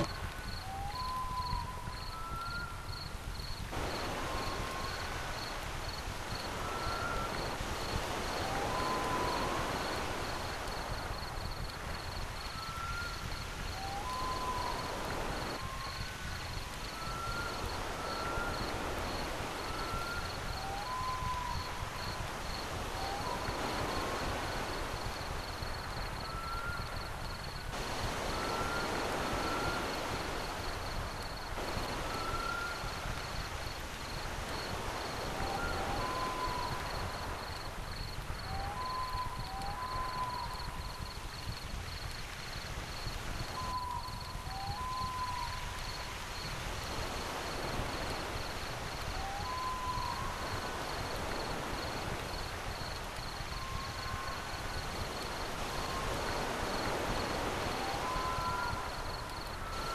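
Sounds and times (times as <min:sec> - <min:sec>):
whistled bird calls: 0:00.0 - 0:24.6, 0:25.6 - 0:27.4, 0:28.0 - 0:30.7, 0:31.6 - 0:33.4, 0:34.5 - 0:41.4, 0:43.4 - 0:46.5, 0:49.1 - 0:51.9, 0:53.3 - 0:54.6, 0:55.7 - 0:59.9
steady background hiss: 0:00.0 - 0:59.9.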